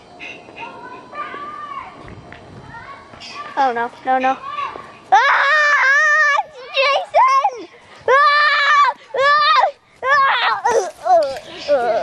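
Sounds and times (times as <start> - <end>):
faint murmurs: 2.6 - 12.0
child's wordless cry: 5.1 - 12.0.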